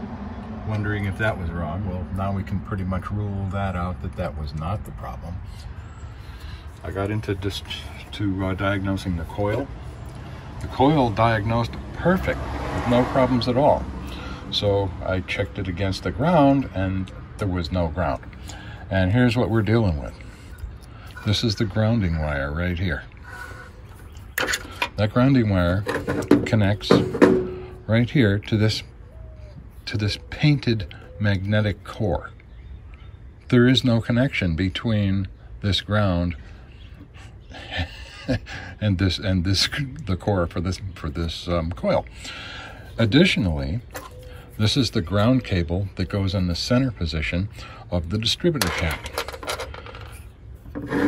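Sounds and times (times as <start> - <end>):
metal scraping on surface: 25.7 - 27.9, 48.6 - 51.0
metal bracket clinking: 25.8 - 27.9.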